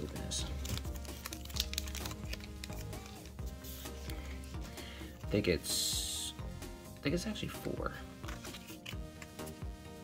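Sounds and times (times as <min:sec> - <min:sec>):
background music: 0:00.0 - 0:10.0
foil pack crinkling: 0:00.4 - 0:03.4.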